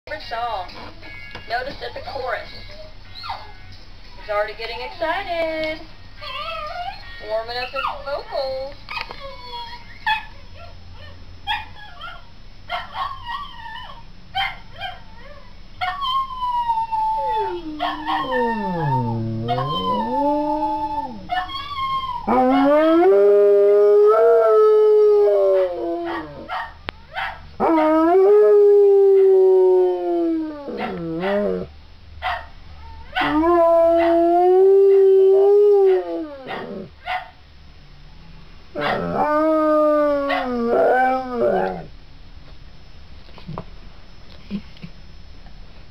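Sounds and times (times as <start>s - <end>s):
dog howling: 14.9s - 31.7s, 32.8s - 36.9s, 38.8s - 41.9s.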